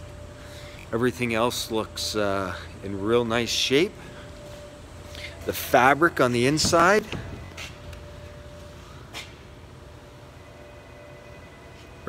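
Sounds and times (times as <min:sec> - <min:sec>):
faint steady tone: 0:00.0 - 0:12.0
low background hum: 0:00.0 - 0:12.0.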